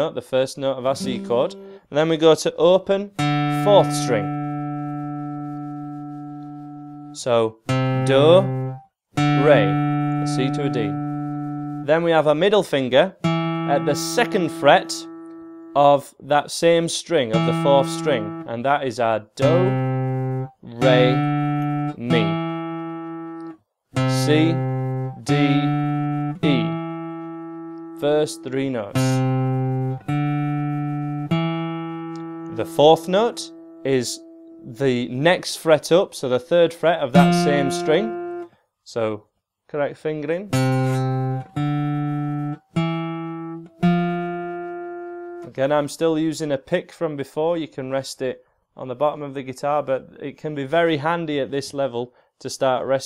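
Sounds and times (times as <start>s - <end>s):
acoustic guitar low note: 0.9s - 2.2s, 3.2s - 12.3s, 13.2s - 16.0s, 17.3s - 18.5s, 19.4s - 35.4s, 37.1s - 38.5s, 40.5s - 45.6s.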